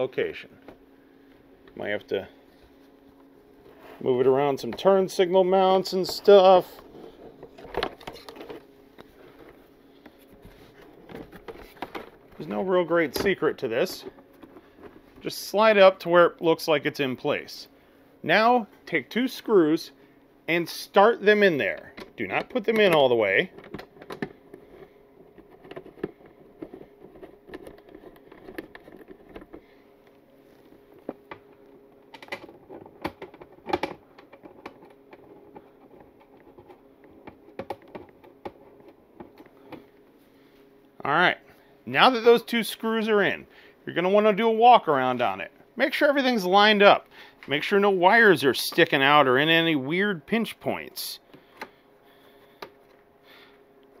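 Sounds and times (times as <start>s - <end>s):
faint steady hum: 0.0s - 54.0s.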